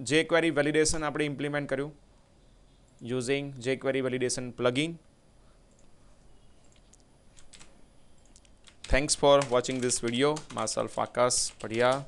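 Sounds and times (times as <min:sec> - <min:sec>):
computer mouse clicks: 0:06.6 - 0:10.6.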